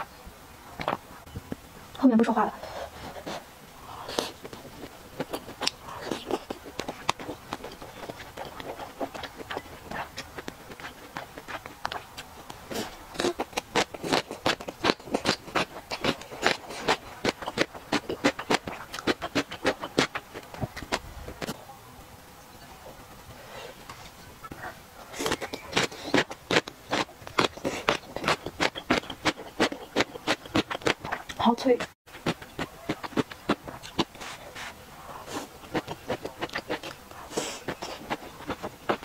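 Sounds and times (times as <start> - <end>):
close chewing crunchy food: 2.6 - 21.6, 24.4 - 39.0.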